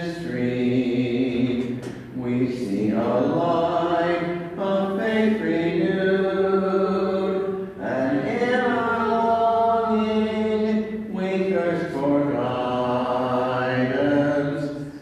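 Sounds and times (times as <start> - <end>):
voices singing a hymn: 0.0 - 15.0.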